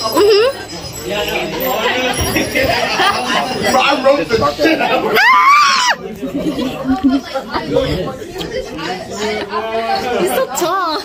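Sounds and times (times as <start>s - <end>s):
teenagers chattering: 0.0s - 11.0s.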